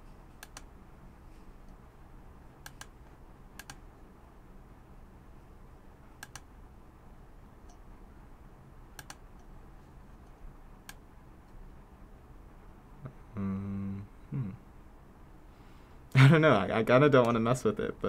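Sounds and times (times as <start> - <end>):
faint low hum: 0.0 - 18.0
computer mouse clicks: 0.3 - 0.7, 2.6 - 3.8, 6.2 - 6.5, 9.0 - 9.5, 10.2 - 11.6.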